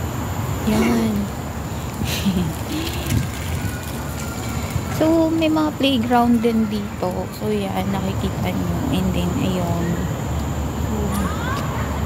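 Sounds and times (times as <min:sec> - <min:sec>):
woman laughing: 0:02.0 - 0:03.3.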